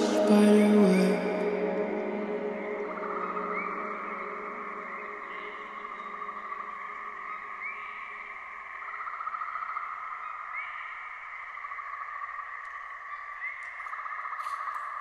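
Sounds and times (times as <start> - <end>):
reverb-heavy pop music: 0.0 - 6.4.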